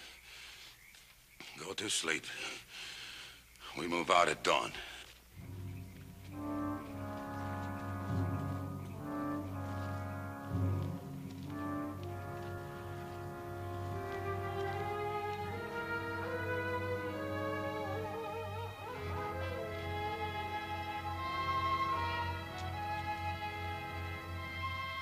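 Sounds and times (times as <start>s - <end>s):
held brass chords: 5.4s - 25.0s
wavering string melody: 5.4s - 25.0s.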